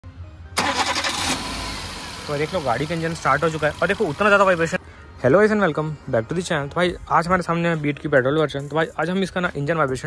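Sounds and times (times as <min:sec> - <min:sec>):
car engine starting and idling: 0:00.4 - 0:04.8.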